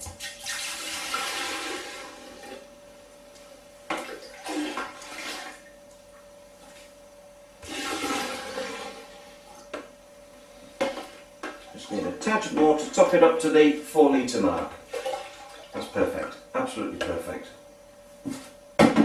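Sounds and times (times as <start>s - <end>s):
liquid pouring and splashing: 0.2s - 2.1s, 4.0s - 5.6s, 7.6s - 9.1s, 14.9s - 15.8s.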